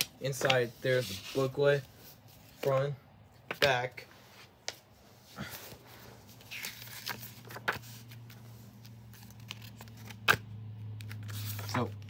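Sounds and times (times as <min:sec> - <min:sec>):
paper booklet handling: 0:05.4 - 0:12.0.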